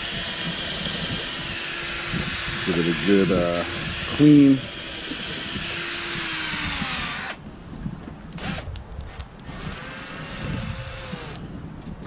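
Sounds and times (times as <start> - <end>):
electric drill spinning brush in bottle: 0.0 - 7.4, 9.4 - 11.4.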